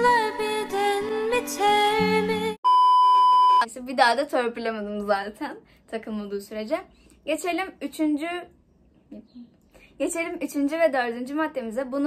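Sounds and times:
pop song: 0.0 - 2.6
electronic bleep: 2.7 - 3.7
woman speaking: 3.6 - 8.5, 9.1 - 12.0.

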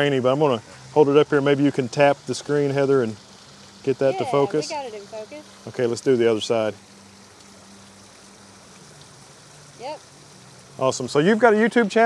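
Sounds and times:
fountain water splashing: 0.0 - 12.0
person saying yep: 4.0 - 4.8.

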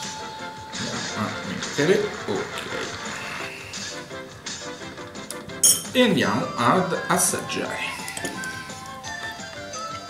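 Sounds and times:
background music: 0.0 - 10.0
teaspoon clinking in ceramic bowl: 5.6 - 6.0.

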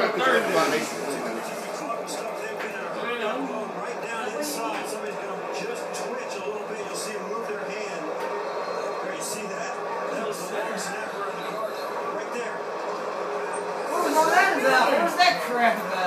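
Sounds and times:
steady background noise: 0.0 - 16.0.

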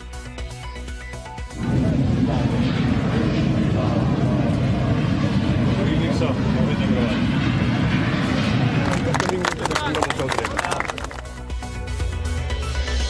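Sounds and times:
aircraft engines rumbling: 0.0 - 13.0
people talking: 5.7 - 7.2, 8.7 - 11.1.

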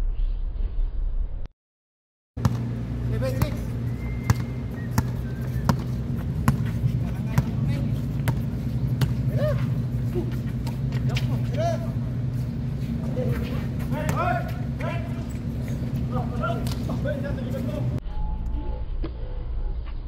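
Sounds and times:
basketball bouncing on hard court: 2.4 - 9.6
steady low hum: 2.4 - 20.0.

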